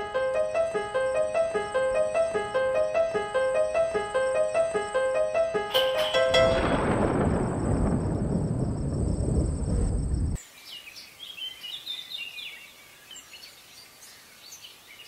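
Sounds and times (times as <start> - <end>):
loud low rumble: 6.2 - 10.4
faint birdsong chirps: 10.4 - 15.0.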